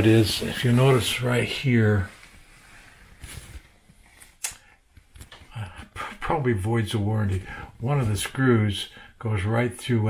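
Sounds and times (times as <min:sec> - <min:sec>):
sharp click: 0:04.4 - 0:04.6.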